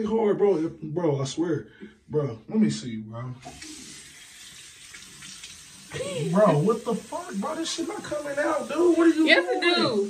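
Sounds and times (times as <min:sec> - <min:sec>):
faucet water pouring into basin: 0:03.4 - 0:10.0.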